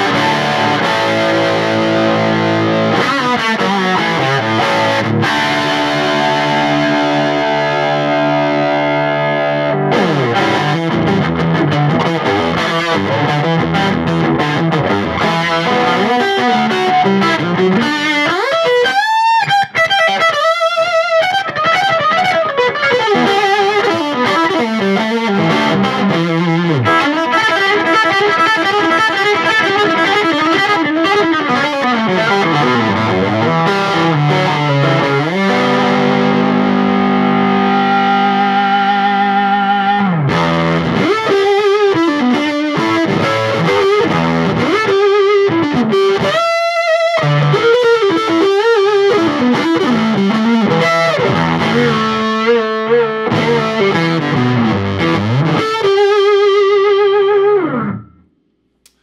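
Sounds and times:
overdriven electric guitar: 0.0 - 59.0.

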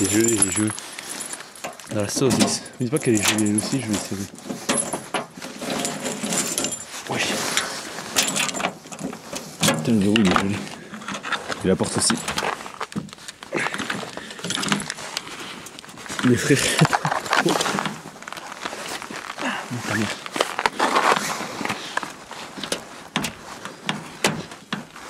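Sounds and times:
footsteps: 10.1 - 25.0.

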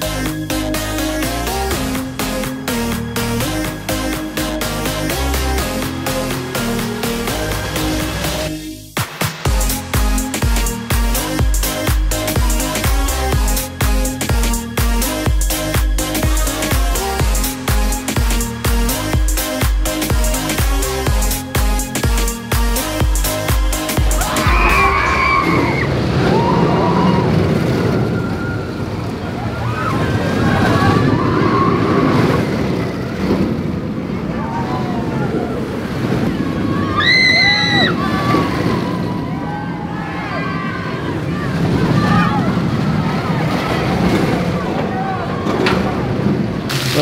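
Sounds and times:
roller coaster rushing on track: 0.0 - 47.0
riders screaming and shouting: 23.9 - 33.1, 33.7 - 47.0.

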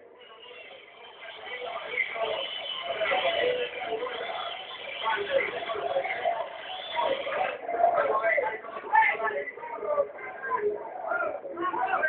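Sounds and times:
stadium crowd chanting and singing: 0.0 - 12.0.

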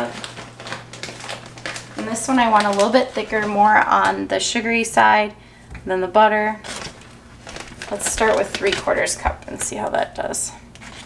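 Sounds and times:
plastic bag crinkling: 0.0 - 4.6, 6.6 - 11.0
low steady hum: 0.0 - 11.0.

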